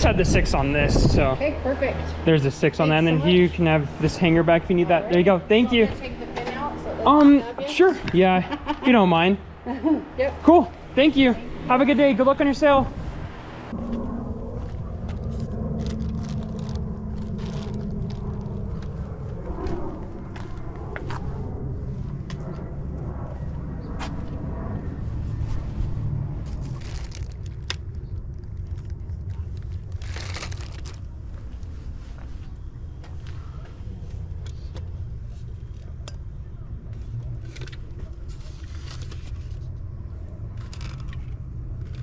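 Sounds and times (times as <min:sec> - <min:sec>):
steady low hum: 0:00.0 - 0:42.0
rumble: 0:12.4 - 0:42.0
plastic zipper bags rustling: 0:26.5 - 0:27.7, 0:28.7 - 0:31.1.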